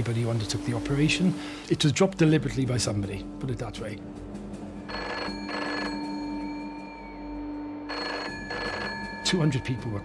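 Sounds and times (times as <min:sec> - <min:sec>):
telephone ringing: 0:04.9 - 0:06.9, 0:07.8 - 0:10.0.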